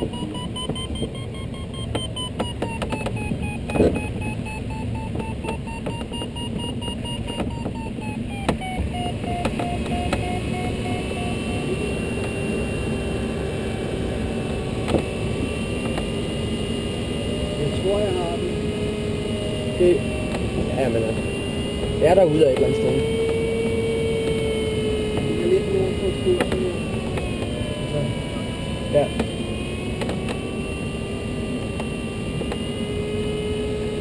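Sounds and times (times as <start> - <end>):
airflow rush in cockpit: 0.0 - 34.0
variometer beeping: 0.0 - 34.0
clicks: 0.1 - 11.3, 26.4 - 27.6.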